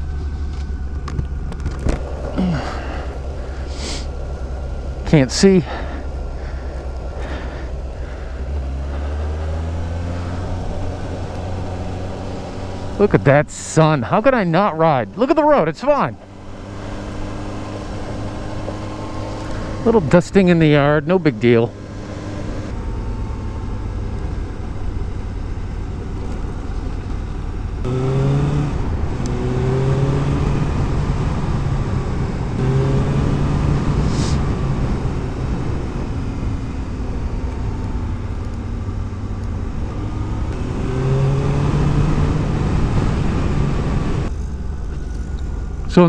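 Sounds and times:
motorcycle engine accelerating: 0.0s - 46.0s
wind and road noise: 0.0s - 46.0s.

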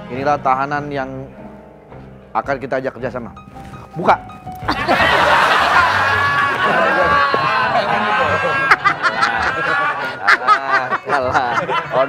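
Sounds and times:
music: 0.0s - 12.0s
crowd laughing: 4.7s - 12.0s.

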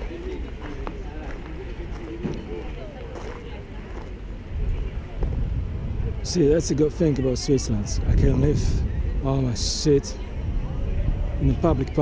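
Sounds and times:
low microphone rumble: 0.0s - 12.0s
people chattering: 0.0s - 12.0s.

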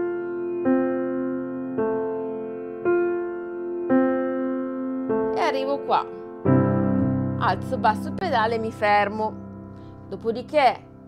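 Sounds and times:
slow piano notes: 0.0s - 11.0s.

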